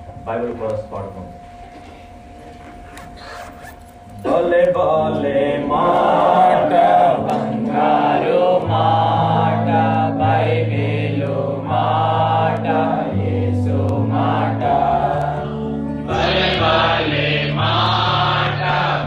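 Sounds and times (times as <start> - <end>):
sustained keyboard chords: 0.0 - 19.0
group singing worship song: 4.2 - 19.0.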